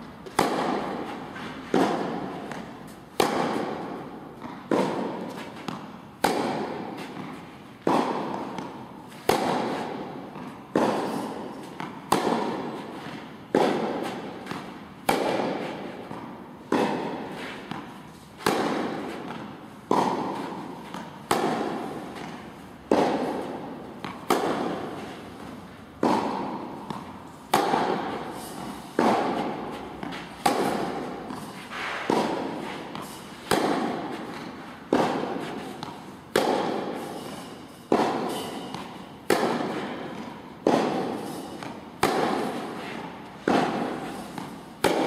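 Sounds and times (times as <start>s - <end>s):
tennis balls struck by rackets: 0.0s - 45.0s.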